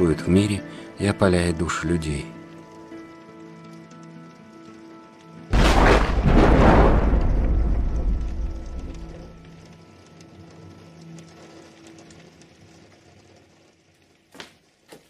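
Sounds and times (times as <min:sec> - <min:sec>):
steady rain: 0:00.0 - 0:15.0
thunderclap rumbling: 0:05.5 - 0:09.6.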